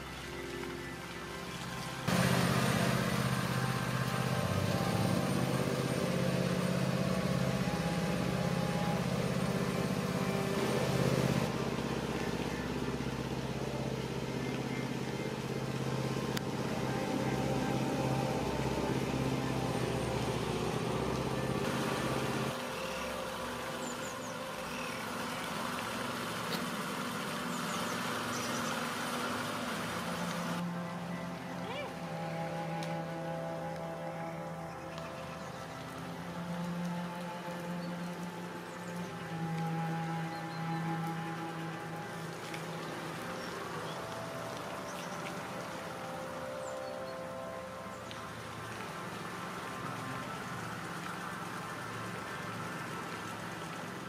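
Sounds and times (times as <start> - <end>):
outdoor noise: 0.0 - 54.0
vehicle engine droning: 0.6 - 54.0.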